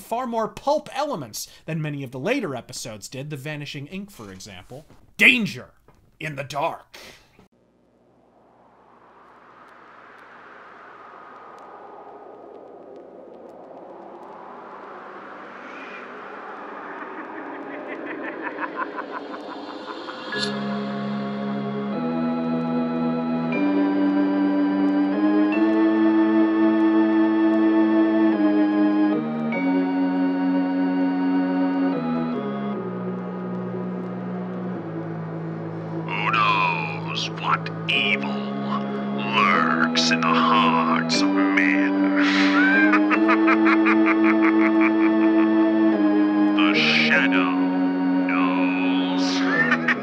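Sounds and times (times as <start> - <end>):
rushing noise: 7.6 - 22.1, 32.8 - 50.0
high wavering gliding sound: 8.0 - 21.9
organ playing low chords: 16.2 - 50.0.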